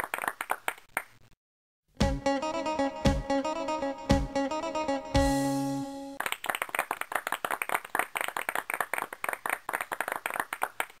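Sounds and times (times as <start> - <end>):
people clapping: 0.0 - 1.2, 6.2 - 11.0.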